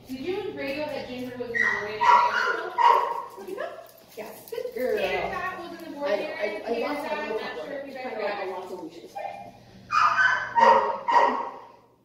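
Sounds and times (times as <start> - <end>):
dog barking: 1.6 - 3.3, 9.2 - 11.7.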